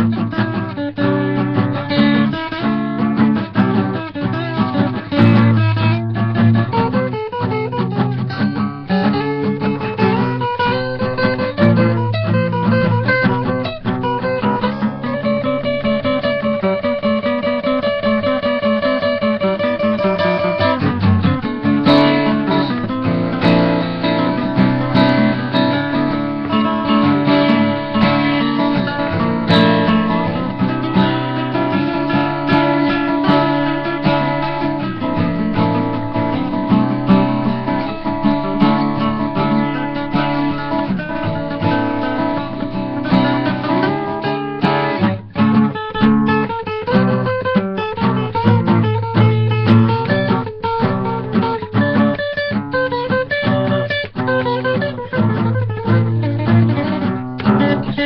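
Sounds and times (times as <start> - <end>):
acoustic guitar duet: 0.0 - 58.0.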